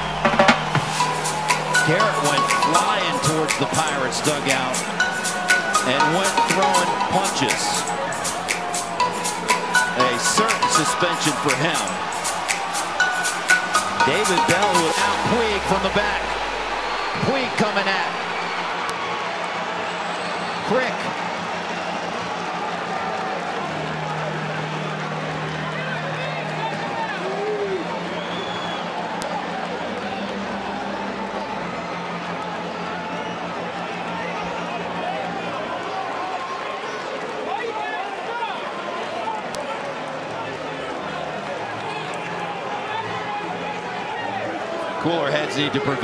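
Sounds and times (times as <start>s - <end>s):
players shouting: 0.0s - 24.8s
ballpark crowd noise: 0.0s - 46.0s.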